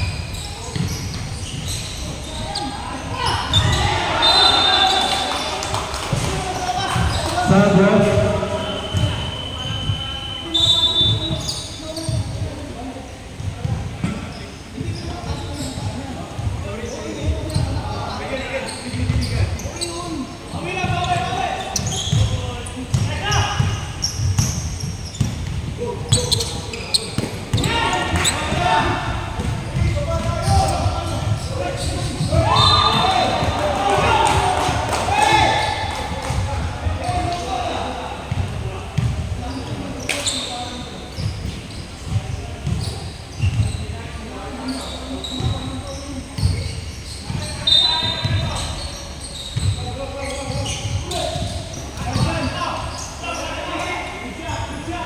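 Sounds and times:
ball bouncing on wooden court: 0:00.6 - 0:01.8, 0:20.8 - 0:28.7, 0:29.4 - 0:33.6, 0:41.2 - 0:43.8
players shouting: 0:02.1 - 0:11.1, 0:27.5 - 0:38.2.

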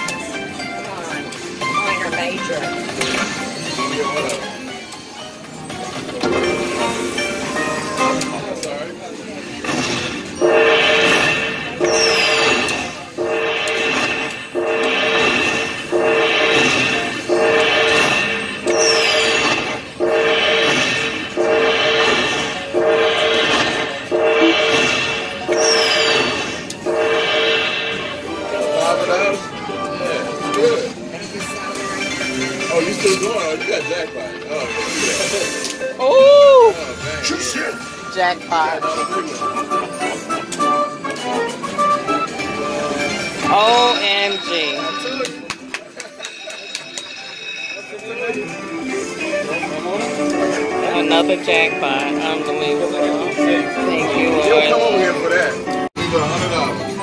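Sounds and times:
slot machine win music: 0:00.0 - 0:36.0, 0:36.8 - 0:57.0.

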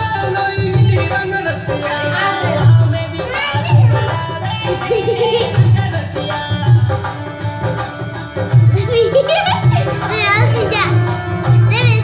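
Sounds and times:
folk music drum beat: 0:00.0 - 0:12.0.

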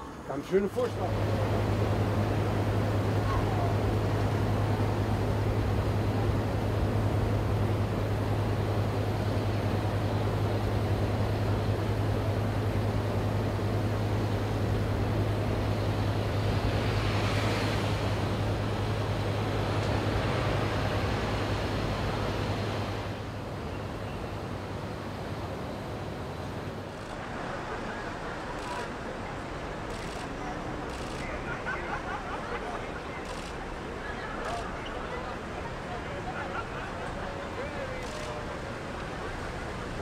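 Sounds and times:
road noise: 0:00.0 - 0:40.0
diesel engine hum: 0:00.9 - 0:31.5.

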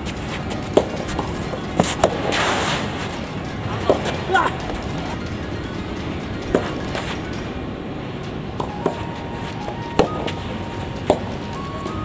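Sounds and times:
racket striking soft ball: 0:00.1 - 0:03.1, 0:03.8 - 0:05.1, 0:06.4 - 0:07.2, 0:08.6 - 0:11.8.

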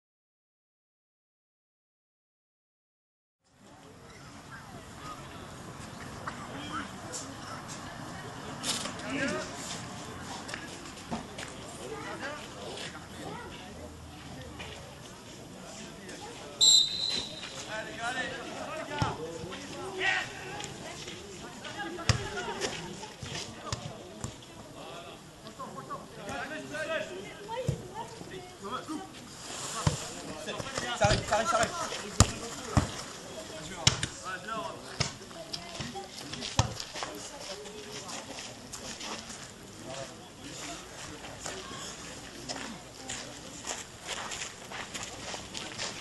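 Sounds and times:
referee's whistle: 0:16.6 - 0:17.6
players calling out: 0:16.6 - 0:18.0.

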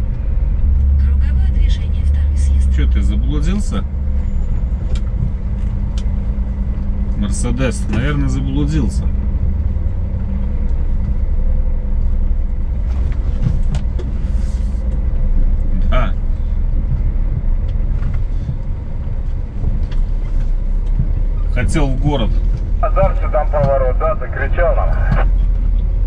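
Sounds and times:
truck diesel engine drone: 0:00.0 - 0:26.0.

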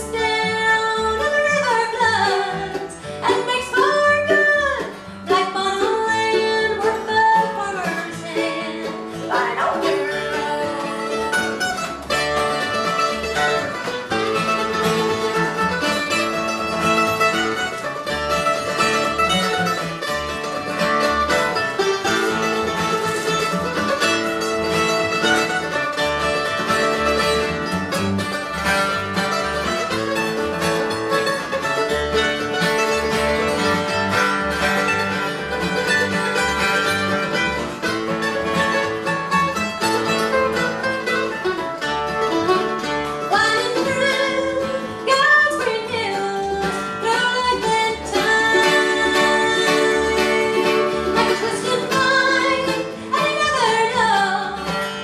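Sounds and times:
acoustic guitar rhythm: 0:00.0 - 0:55.0
mandolin fast lead: 0:00.0 - 0:55.0
upright bass: 0:00.0 - 0:55.0.

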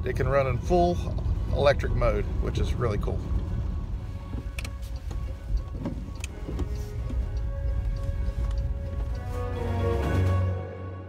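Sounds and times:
road noise rumble in car cabin: 0:00.0 - 0:10.6
quiet background music: 0:01.4 - 0:11.0.

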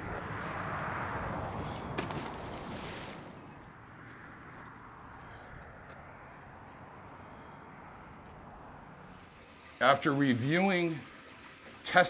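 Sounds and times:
car passing: 0:00.0 - 0:11.7
faint traffic hum: 0:00.0 - 0:12.0.

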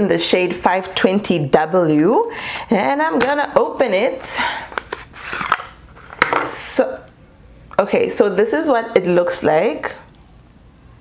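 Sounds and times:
cardboard packaging rustling: 0:04.7 - 0:06.3.

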